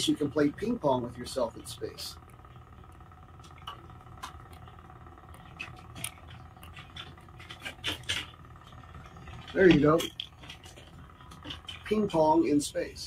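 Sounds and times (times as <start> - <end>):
steady cabin hum: 0.0 - 13.0.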